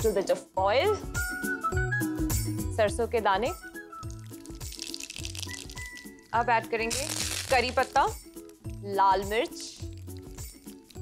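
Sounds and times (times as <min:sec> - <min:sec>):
background music: 0:00.0 - 0:11.0
seeds sizzling in hot oil: 0:03.7 - 0:11.0.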